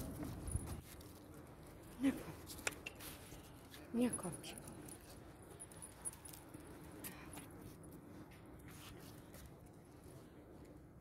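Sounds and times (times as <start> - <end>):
low outdoor hum: 0.0 - 11.0.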